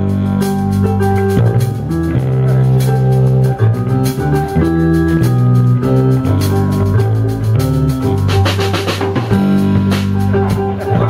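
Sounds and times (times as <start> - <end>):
drum kit: 0.0 - 11.0
electric guitars and keyboard chords: 0.0 - 11.0.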